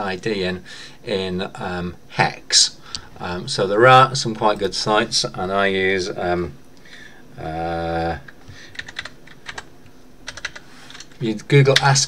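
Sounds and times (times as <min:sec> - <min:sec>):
computer keyboard typing: 0:08.7 - 0:11.9.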